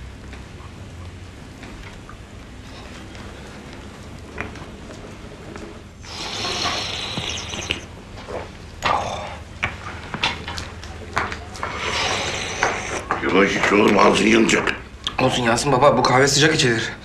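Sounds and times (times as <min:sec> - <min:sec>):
slurping hot coffee: 0:06.0 - 0:09.2, 0:11.6 - 0:13.2.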